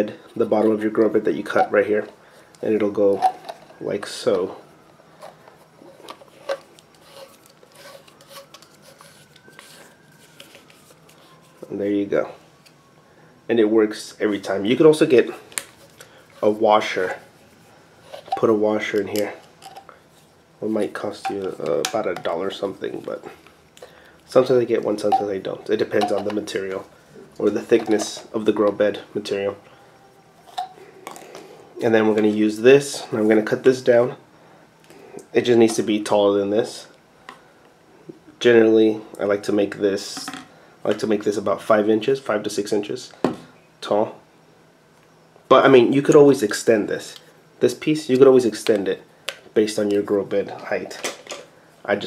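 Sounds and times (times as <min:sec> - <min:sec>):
man speaking: 0:00.0 - 0:04.7, 0:11.6 - 0:12.4, 0:13.5 - 0:15.5, 0:16.4 - 0:17.2, 0:18.3 - 0:19.4, 0:20.6 - 0:23.4, 0:24.3 - 0:29.6, 0:31.8 - 0:34.2, 0:35.3 - 0:36.9, 0:49.6 - 0:51.0
plastic pipe fittings rubbing: 0:05.2 - 0:11.7, 0:15.8 - 0:19.9.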